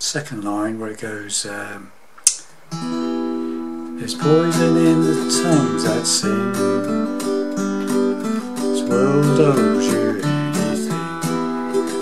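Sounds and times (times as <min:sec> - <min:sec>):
sharp click: 0:02.2 - 0:02.5
acoustic guitar chord: 0:02.7 - 0:12.0.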